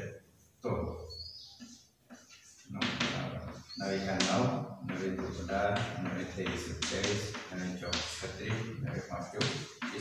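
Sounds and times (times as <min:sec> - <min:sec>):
man speaking: 0:00.0 - 0:01.1, 0:02.7 - 0:10.0
chalk tapping on blackboard: 0:01.5 - 0:10.0.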